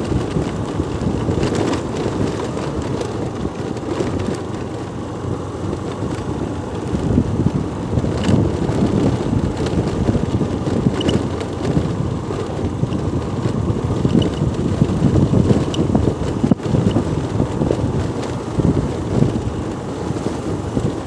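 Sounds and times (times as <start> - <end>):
vehicle running noise: 0.0 - 21.0
wind buffeting microphone: 0.0 - 21.0.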